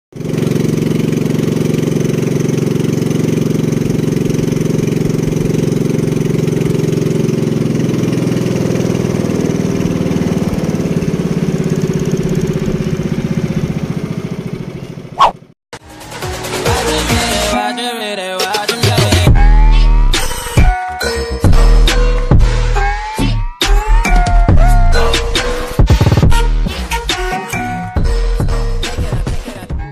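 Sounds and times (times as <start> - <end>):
small boat engine running: 0.1 - 15.3
short sharp sound: 15.2 - 15.4.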